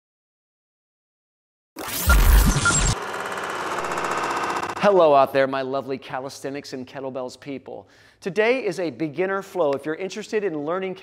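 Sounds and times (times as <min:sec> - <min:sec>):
rapid mechanical clatter: 0:02.3 - 0:04.9.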